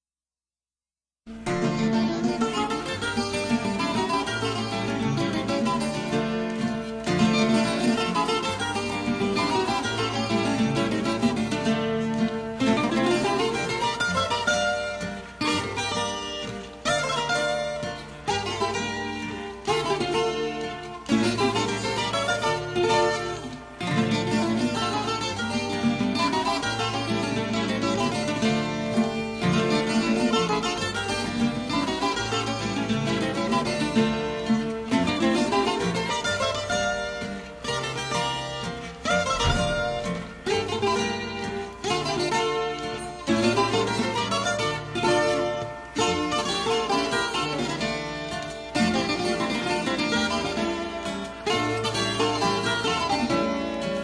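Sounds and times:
plucked string instrumental melody: 1.3 - 54.0.

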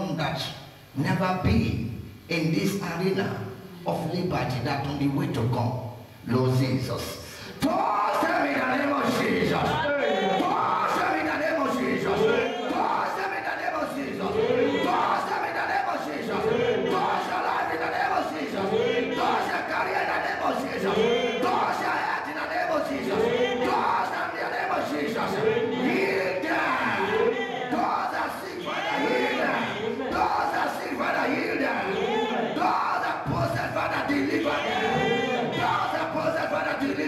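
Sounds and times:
crowd of voices: 7.6 - 37.0
man praying loudly into microphone: 32.7 - 34.6.

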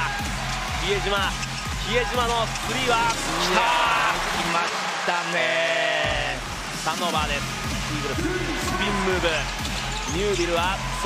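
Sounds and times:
arena music: 0.0 - 11.0.

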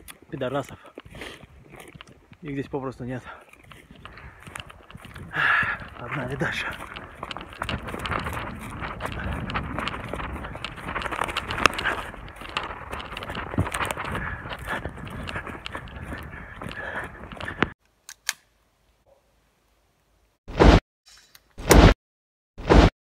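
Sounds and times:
footsteps crunching on forest floor: 0.0 - 17.8.

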